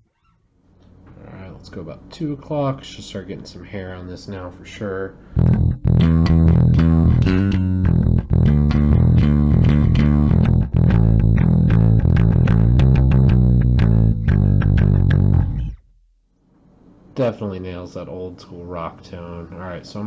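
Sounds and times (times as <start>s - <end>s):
electric bass guitar with gritty tone: 5.3s - 16.1s.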